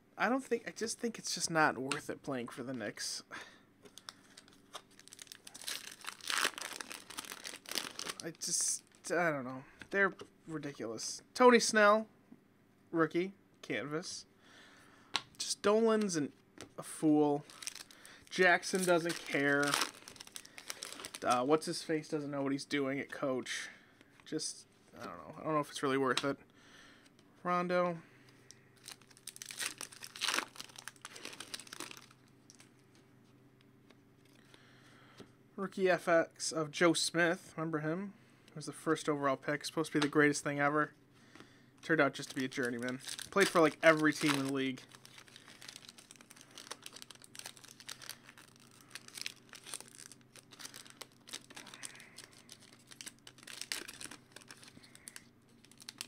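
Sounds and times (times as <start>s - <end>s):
foil wrapper crinkling: 3.9s - 9.0s, 17.4s - 21.4s, 28.8s - 32.7s, 42.2s - 56.0s.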